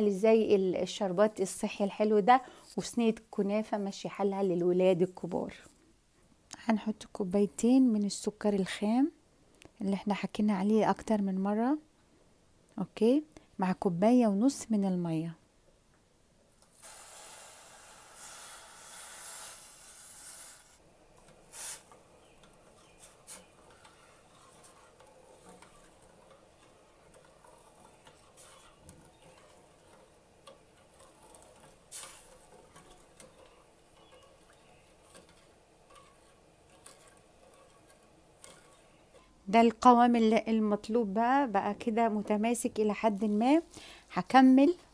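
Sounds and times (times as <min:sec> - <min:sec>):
metal spoon stirring syrup: 0:16.7 - 0:40.9.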